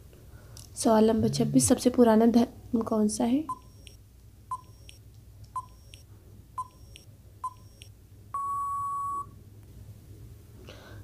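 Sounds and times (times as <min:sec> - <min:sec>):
faint low hum: 0:00.0 - 0:11.0
long steady beep: 0:03.5 - 0:05.0, 0:05.6 - 0:09.4
ticking beeps: 0:03.5 - 0:05.0, 0:05.6 - 0:09.3.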